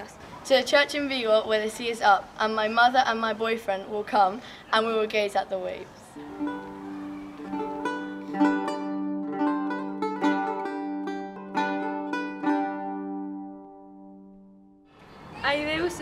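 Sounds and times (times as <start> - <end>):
plucked string instrument melody: 6.2 - 14.8.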